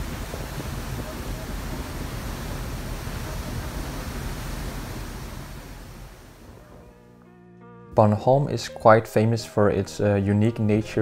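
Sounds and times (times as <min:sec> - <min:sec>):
ferry wake churning: 0:00.0 - 0:06.6
wind rushing: 0:00.0 - 0:06.9
heavy low rumble: 0:00.0 - 0:07.0.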